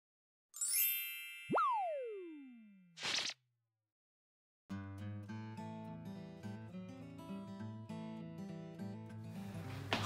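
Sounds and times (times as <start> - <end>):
pitch swoop up and down: 1.5 - 3.4.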